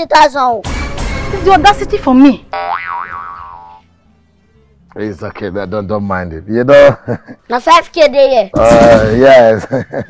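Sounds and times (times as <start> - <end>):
cartoon boing: 2.6 - 3.8.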